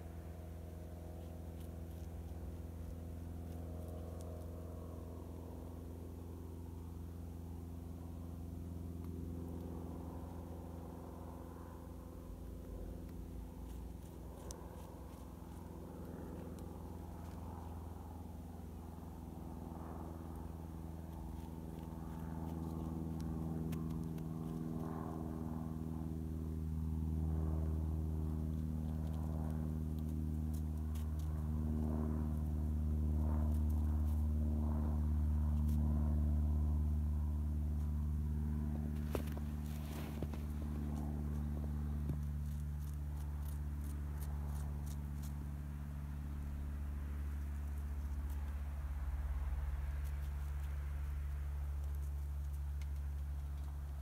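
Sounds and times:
low engine drone: 0:00.0 - 0:54.0
faint clicks and crackles: 0:00.8 - 0:04.9, 0:12.2 - 0:18.1, 0:19.6 - 0:25.7, 0:27.3 - 0:32.5, 0:38.9 - 0:54.0.

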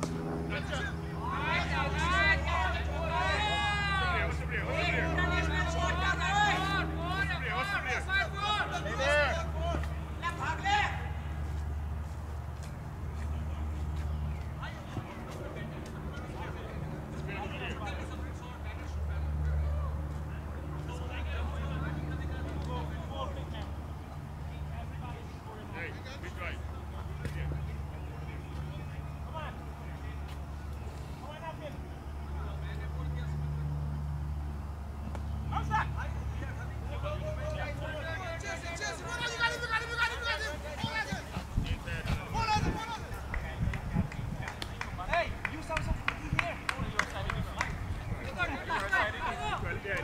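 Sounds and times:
players calling and shouting: 0:00.0 - 0:50.0
steady low hum: 0:00.0 - 0:50.0.

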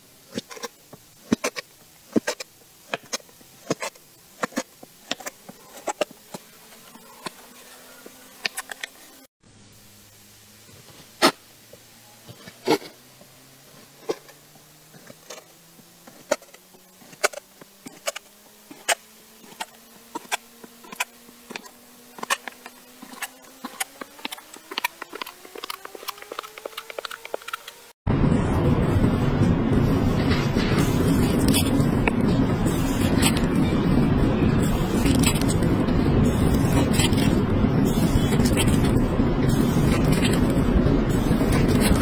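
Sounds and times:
faint steady hum: 0:00.0 - 0:42.0.

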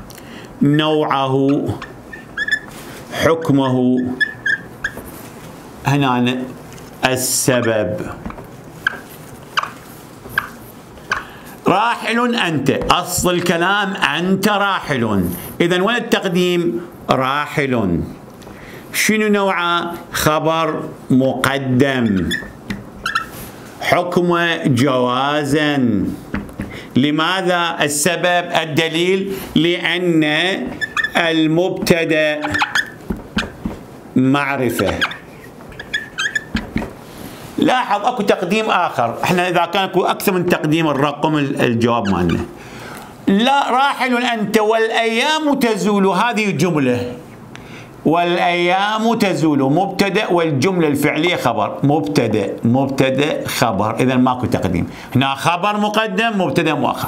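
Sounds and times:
marker squeaking on a whiteboard: 0:01.3 - 0:05.5, 0:06.4 - 0:14.0, 0:19.8 - 0:21.0, 0:21.6 - 0:23.6, 0:26.2 - 0:26.9, 0:28.4 - 0:37.0, 0:40.1 - 0:42.6.

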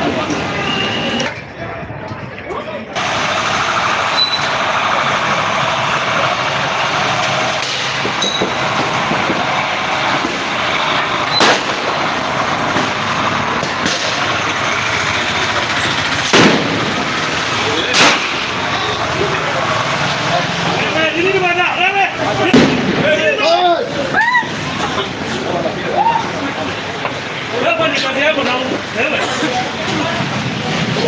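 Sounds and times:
truck: 0:00.0 - 0:31.0
voices: 0:00.0 - 0:31.0
gunshots: 0:07.5 - 0:13.0, 0:16.2 - 0:18.6, 0:22.4 - 0:23.3.

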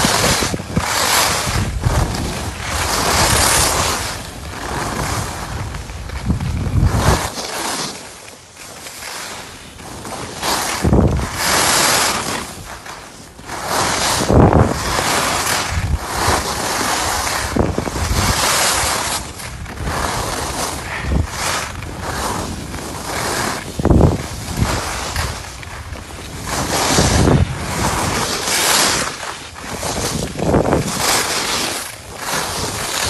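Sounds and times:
wind rushing over microphone: 0:00.0 - 0:07.4, 0:09.9 - 0:33.0
skis carving on packed snow: 0:00.0 - 0:33.0.

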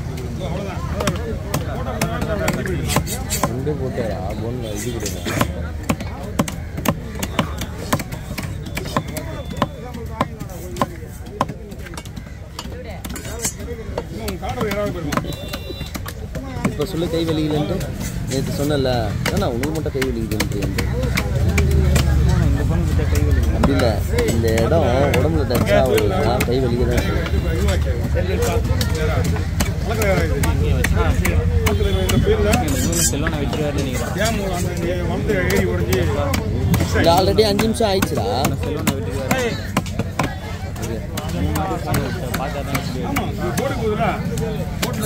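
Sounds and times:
voices talking: 0:00.0 - 0:45.0
knife chopping on wooden block: 0:01.0 - 0:03.6, 0:05.0 - 0:18.2.

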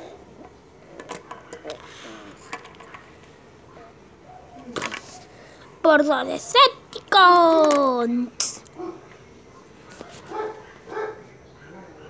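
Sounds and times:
dog yipping: 0:10.0 - 0:11.2.

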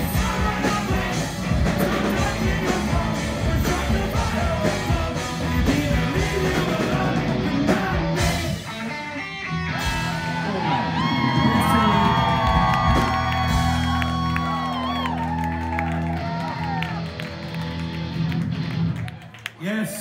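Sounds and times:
live rock band: 0:00.0 - 0:19.4
crowd whooping and cheering: 0:09.6 - 0:20.0.

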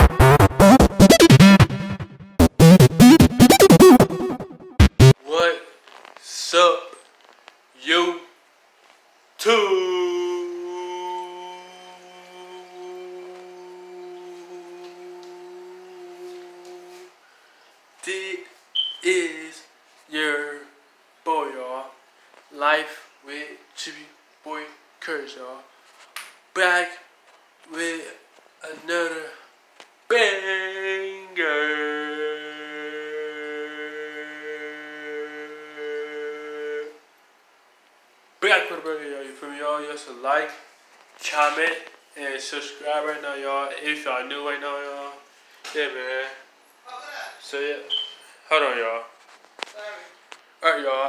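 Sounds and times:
man singing a long note: 0:09.6 - 0:17.1, 0:30.5 - 0:37.0.

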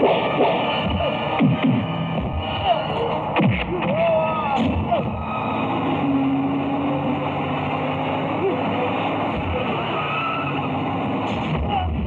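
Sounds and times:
heavy truck engine running: 0:00.0 - 0:12.0.

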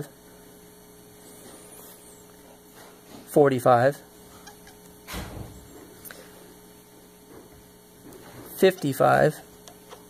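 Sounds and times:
low electrical hum: 0:00.0 - 0:10.0
marker squeaking on whiteboard: 0:04.4 - 0:04.8.

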